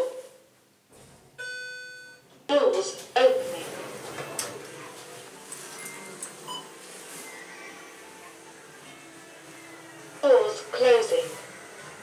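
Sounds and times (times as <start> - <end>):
lift arrival chime: 5.7 - 7.9.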